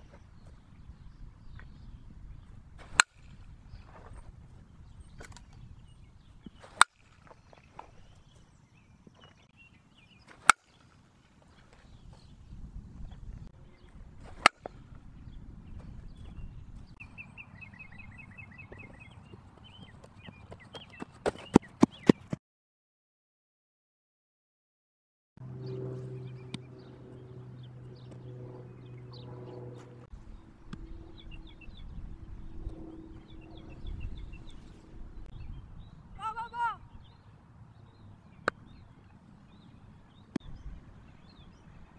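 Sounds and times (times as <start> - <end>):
faint outdoor background: 0.0 - 22.4, 25.4 - 41.9
small birds chirping: 0.0 - 22.4, 25.6 - 41.9
bat striking softball: 2.8 - 3.8, 6.5 - 8.0, 10.3 - 11.0, 14.2 - 14.9
steady low hum: 25.4 - 36.2.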